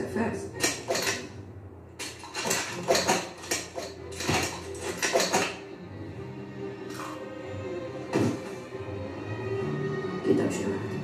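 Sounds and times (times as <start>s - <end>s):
clattering knocks and clicks: 0.6s - 1.3s, 2.0s - 5.6s.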